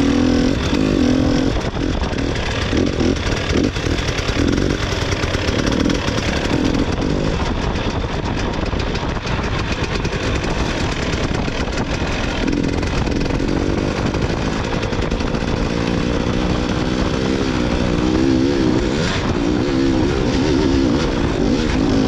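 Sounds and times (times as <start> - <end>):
motorcycle engine buzzing: 0.0 - 22.0.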